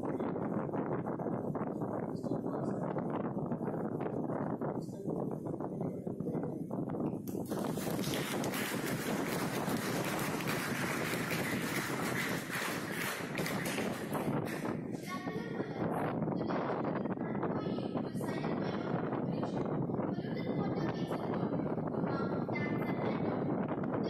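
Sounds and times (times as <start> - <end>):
audience applauding: 7.3 - 14.8.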